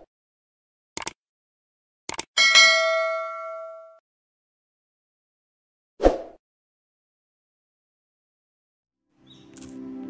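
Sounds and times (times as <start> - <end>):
bell ding: 2.4 - 4.0.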